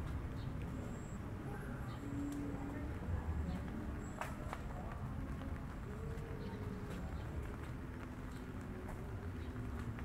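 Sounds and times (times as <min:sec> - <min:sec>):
footsteps on cobblestones: 0:00.0 - 0:10.0
outdoor ambience: 0:00.0 - 0:10.0.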